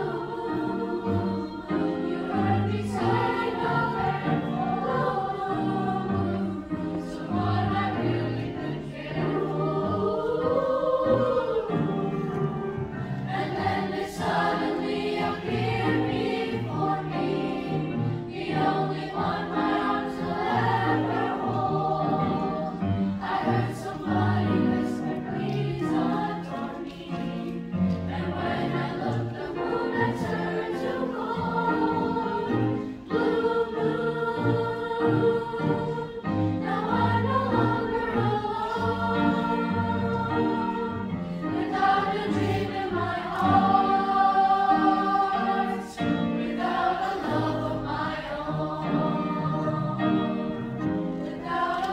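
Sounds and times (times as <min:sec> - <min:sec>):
youth choir singing: 0:00.0 - 0:51.9.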